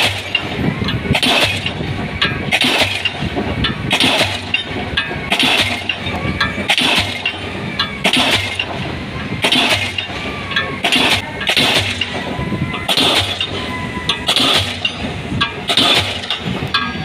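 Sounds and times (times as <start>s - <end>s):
crane engine running: 0.0s - 17.0s
pile hammer striking concrete: 1.2s - 1.8s, 3.9s - 8.8s, 9.4s - 10.2s, 10.8s - 12.2s, 14.3s - 15.0s, 15.7s - 16.9s.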